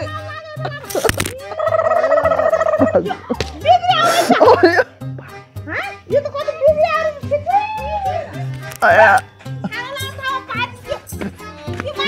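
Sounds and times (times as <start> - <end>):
loud voices: 0.0 - 12.0.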